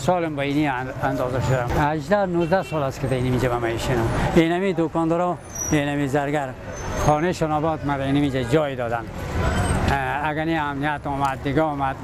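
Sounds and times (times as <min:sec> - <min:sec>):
man talking: 0:00.0 - 0:09.2, 0:09.9 - 0:12.0
road traffic rumble: 0:00.0 - 0:12.0.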